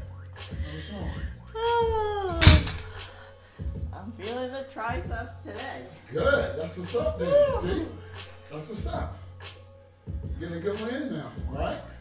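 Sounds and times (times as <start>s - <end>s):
woman groaning: 0.9s - 3.0s, 7.2s - 7.9s
loud sharp thunk: 2.4s - 2.9s.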